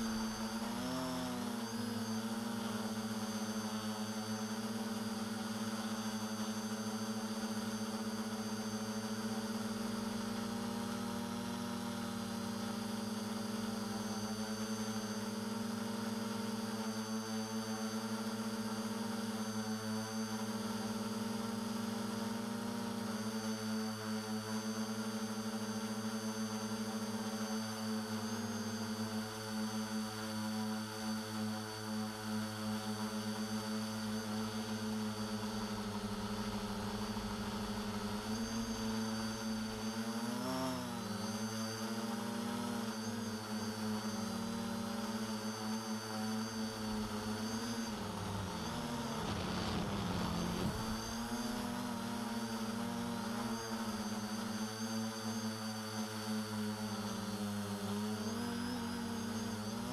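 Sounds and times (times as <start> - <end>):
drone motors and propellers humming: 0.0 - 59.9.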